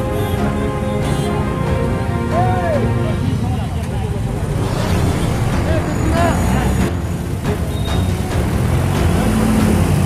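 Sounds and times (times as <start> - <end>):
traffic rumble: 0.0 - 10.0
people's voices: 2.3 - 6.9.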